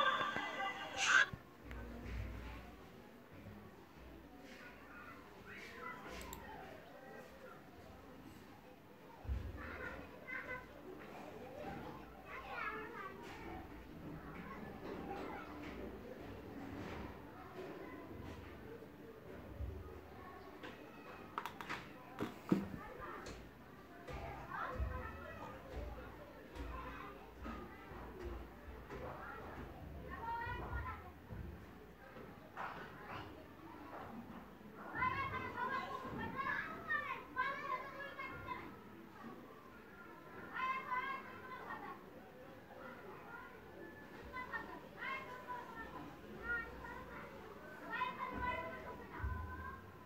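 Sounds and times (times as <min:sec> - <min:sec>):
child's high-pitched vocal calls: 0:00.0 - 0:01.4
faint high-pitched voices: 0:00.0 - 0:50.0.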